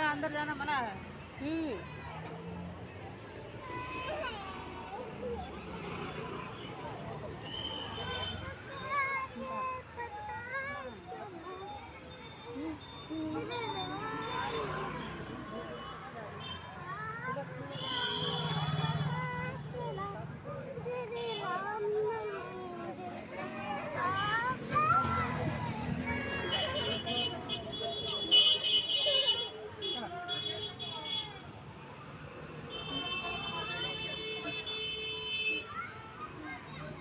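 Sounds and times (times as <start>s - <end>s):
people talking: 3.7s - 31.6s.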